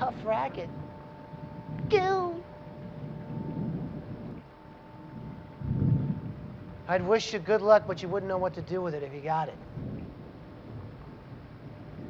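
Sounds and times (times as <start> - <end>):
faint steady hum: 0.0 - 12.0
low rumbling noise: 0.0 - 12.0.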